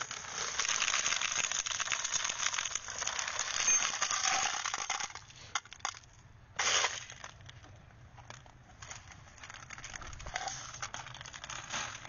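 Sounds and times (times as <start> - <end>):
rattling and crackling: 0.0 - 12.0.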